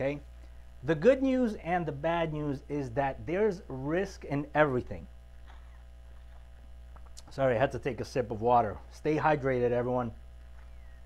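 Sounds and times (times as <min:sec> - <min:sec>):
electrical mains hum: 0:00.0 - 0:11.0
man sipping water: 0:05.4 - 0:07.3.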